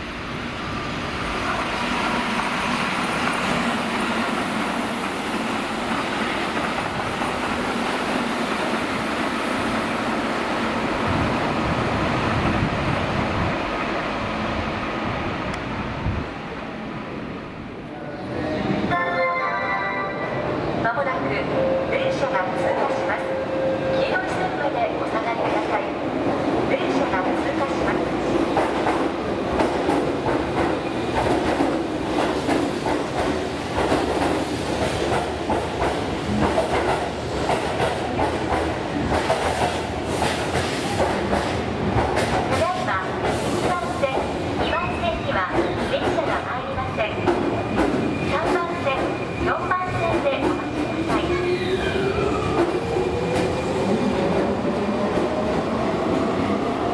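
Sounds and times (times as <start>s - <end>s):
voices on platform: 17.8s - 28.4s, 42.5s - 56.7s
station platform tones: 18.9s - 24.2s.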